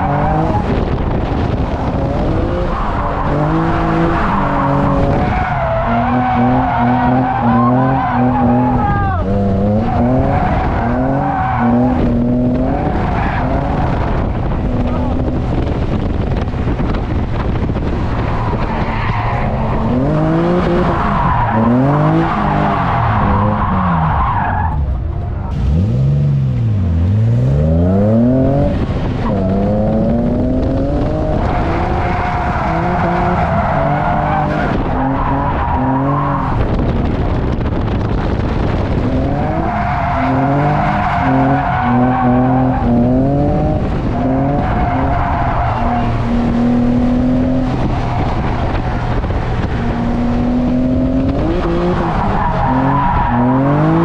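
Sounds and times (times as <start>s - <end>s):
car engine revving: 0.0s - 54.0s
sliding tyre noise: 0.0s - 54.0s.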